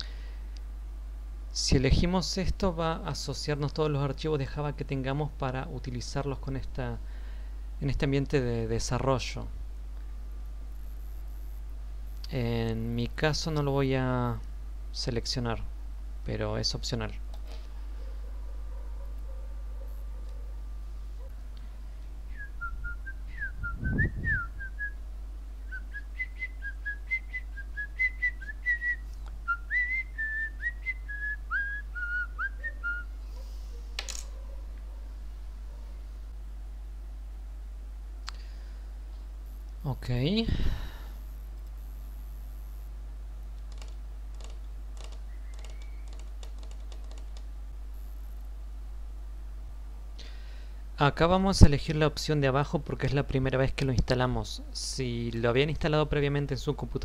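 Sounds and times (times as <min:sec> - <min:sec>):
low electrical hum: 0:00.0 - 0:57.0
keyboard typing clicks: 0:43.6 - 0:47.5.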